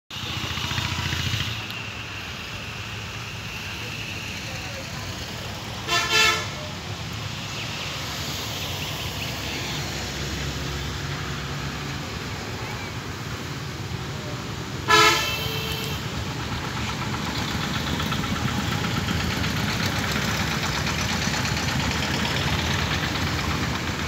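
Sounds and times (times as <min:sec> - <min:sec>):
train horn toot: 0:05.8 - 0:06.6, 0:14.8 - 0:16.1.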